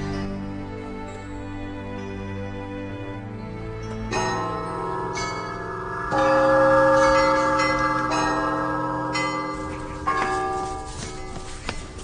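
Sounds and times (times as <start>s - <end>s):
bells ringing: 3.4s - 12.0s.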